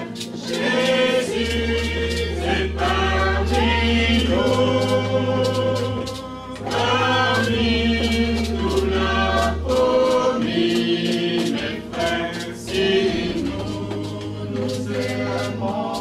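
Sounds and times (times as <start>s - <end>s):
choir singing: 0.0s - 16.0s.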